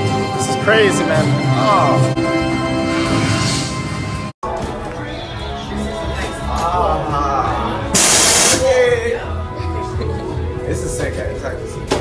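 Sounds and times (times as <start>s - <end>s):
background music: 0.0s - 12.0s
loud hiss of blown air: 7.9s - 8.7s.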